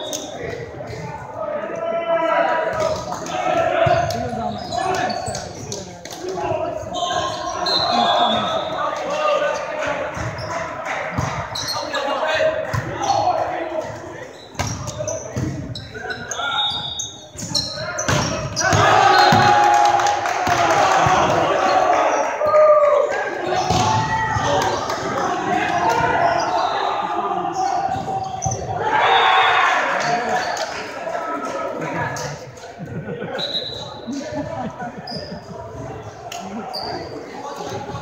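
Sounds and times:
players calling and shouting: 0:00.0 - 0:38.0
volleyball smacks echoing: 0:18.1 - 0:19.6, 0:23.6 - 0:24.8.

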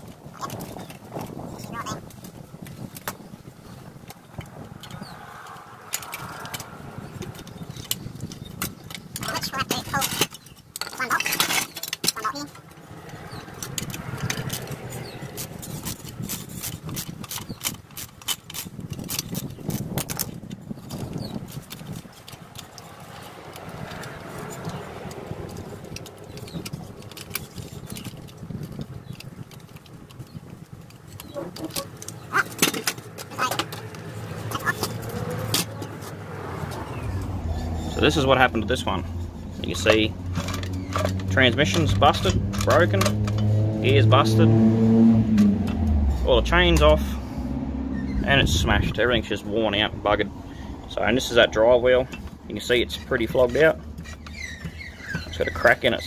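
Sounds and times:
metal hand tools clanking: 0:04.3 - 0:29.9, 0:36.9 - 0:44.5, 0:50.9 - 0:56.0.

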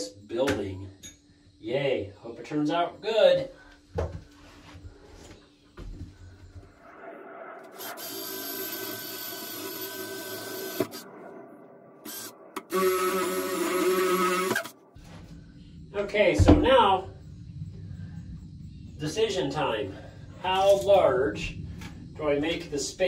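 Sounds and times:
cordless drill boring wood: 0:07.8 - 0:11.0, 0:12.1 - 0:14.7.

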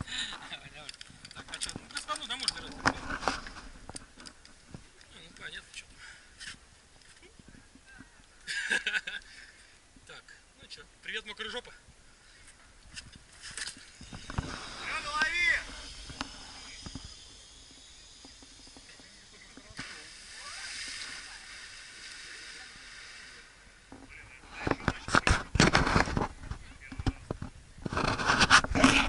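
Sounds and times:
water splashing and hissing: 0:13.3 - 0:23.9.

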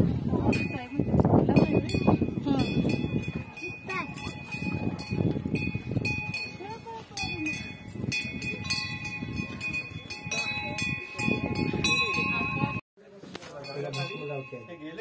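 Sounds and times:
people talking: 0:00.2 - 0:05.7, 0:06.4 - 0:07.8, 0:08.4 - 0:15.0
metal bells ringing: 0:00.4 - 0:12.8, 0:13.5 - 0:15.0.

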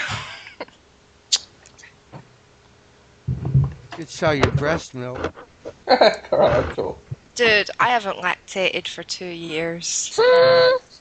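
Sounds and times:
person laughing over phone: 0:05.9 - 0:06.7.

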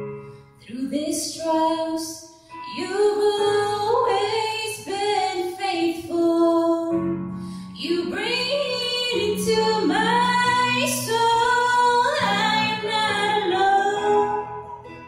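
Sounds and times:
woman singing slow song: 0:00.6 - 0:07.1, 0:07.7 - 0:14.9.

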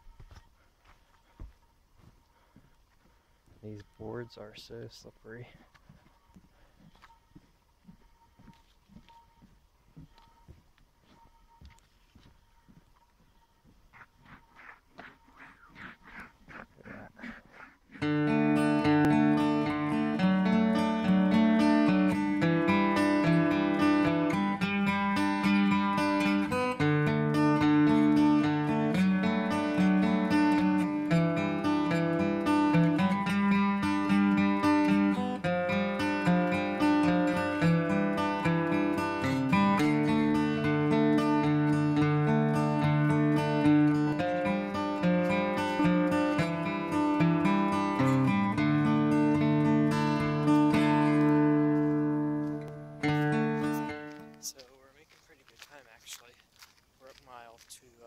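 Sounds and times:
faint footsteps: 0:00.0 - 0:19.9, 0:50.5 - 0:58.0
strummed acoustic guitar music: 0:13.9 - 0:54.7.

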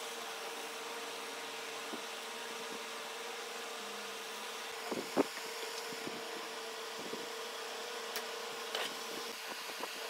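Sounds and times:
electric motor hum: 0:00.0 - 0:10.0.

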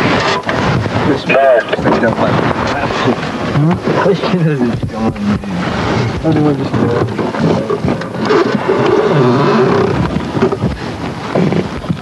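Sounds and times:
men talking: 0:01.0 - 0:07.8.

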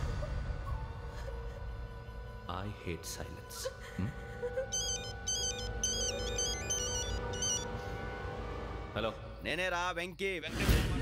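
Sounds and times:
low background music: 0:00.0 - 0:11.0
phone ringtone beeps: 0:04.7 - 0:07.8.

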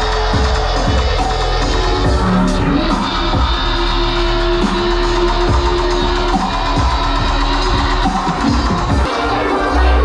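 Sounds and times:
dubstep over sound system: 0:00.0 - 0:10.0.

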